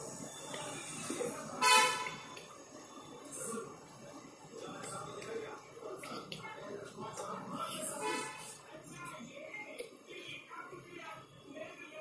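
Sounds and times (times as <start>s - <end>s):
vehicle horn honk: 1.6s - 2.2s.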